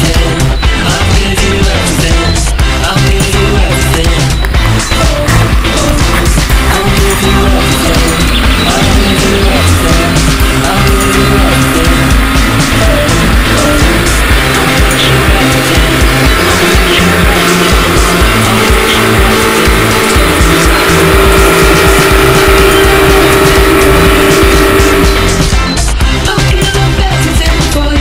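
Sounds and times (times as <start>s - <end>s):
music with steady beat and bass: 0.0s - 28.0s.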